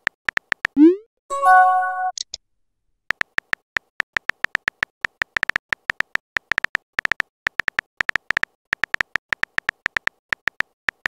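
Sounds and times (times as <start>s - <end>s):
synthetic keyboard typing ticks: 0.0s - 1.0s, 3.1s - 11.0s.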